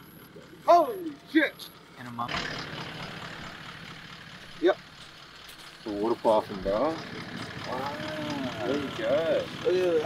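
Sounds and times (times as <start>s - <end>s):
vehicle engine idling: 0.0s - 10.0s
men exclaiming excitedly: 7.6s - 10.0s.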